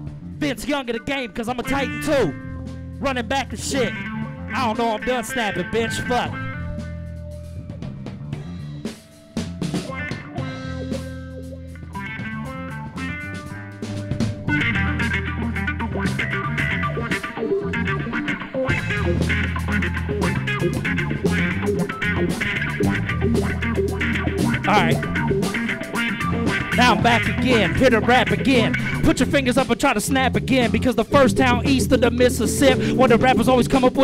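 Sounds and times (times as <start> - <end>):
bass guitar notes: 0.0 - 34.0
electric guitar: 1.6 - 34.0
drum kit: 4.6 - 34.0.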